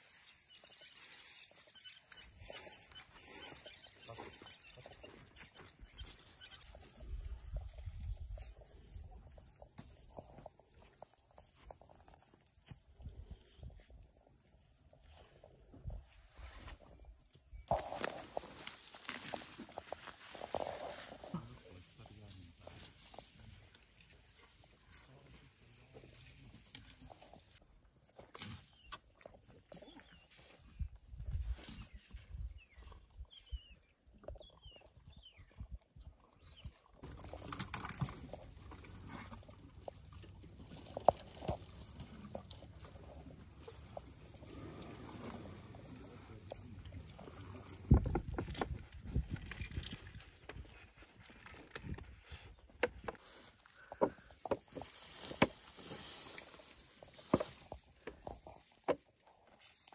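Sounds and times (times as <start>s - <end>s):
elephant calf suckling: 17.7s - 22.0s, 37.0s - 48.0s.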